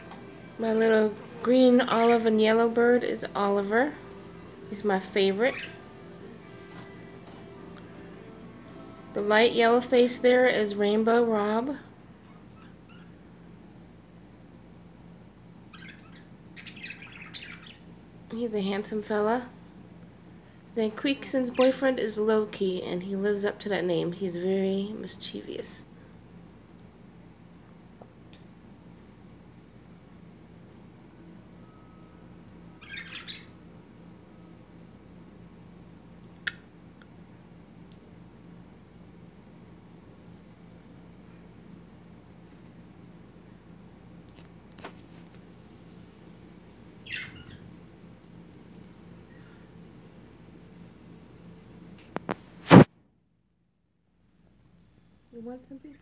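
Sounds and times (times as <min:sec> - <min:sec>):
steady low hum: 0:00.0 - 0:56.0
budgerigars chirping: 0:15.7 - 0:17.8, 0:32.8 - 0:33.5, 0:47.0 - 0:47.7.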